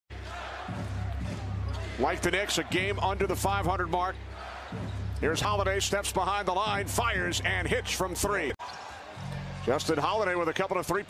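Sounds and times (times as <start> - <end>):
basketball court sounds: 0.2 - 5.7.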